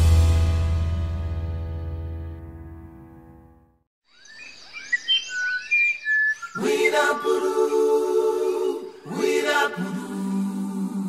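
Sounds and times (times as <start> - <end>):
birds chirping and whistling: 4.1 - 9.2
high bird trill: 4.1 - 9.4.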